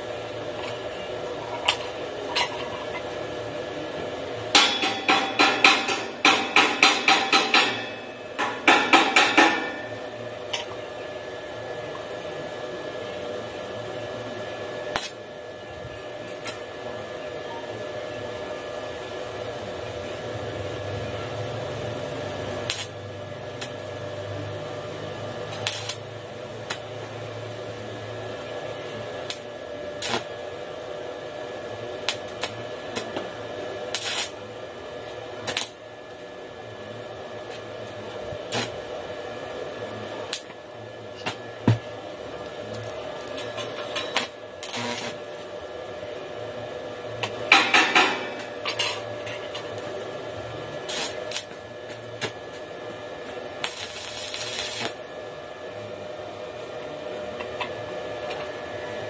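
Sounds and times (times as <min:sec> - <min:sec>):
welding arc buzzing hiss: 0:00.0 - 0:17.0, 0:17.7 - 0:59.0
welding arc sharp cracks: 0:14.9 - 0:15.2, 0:22.6 - 0:23.8, 0:25.4 - 0:26.9, 0:29.2 - 0:30.3, 0:32.0 - 0:33.2, 0:33.8 - 0:34.4, 0:35.4 - 0:35.8, 0:38.5 - 0:38.8, 0:42.7 - 0:45.4, 0:50.8 - 0:52.6, 0:53.6 - 0:55.0.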